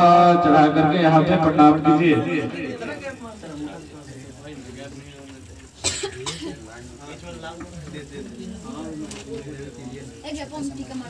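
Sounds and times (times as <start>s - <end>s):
background talk: 0.0s - 11.0s
person coughing: 5.8s - 6.6s.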